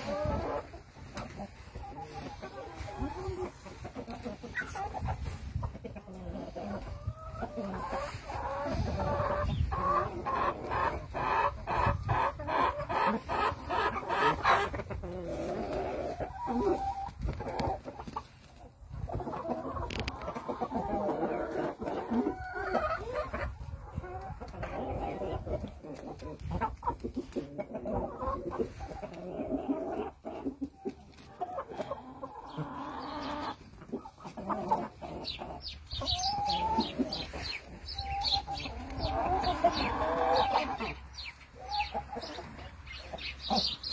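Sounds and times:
chickens clucking: 0.0 - 43.9.

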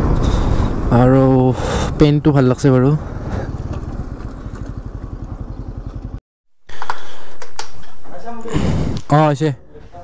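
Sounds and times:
motorcycle engine running: 0.0 - 6.2.

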